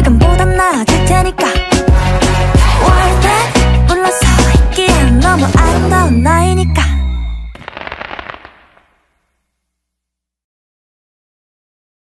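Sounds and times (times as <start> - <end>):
fireworks crackling pops: 7.5 - 9.4.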